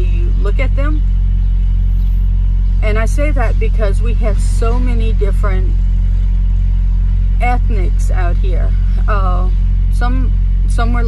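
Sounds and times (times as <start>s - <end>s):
diesel truck engine rumble: 0.0s - 11.0s.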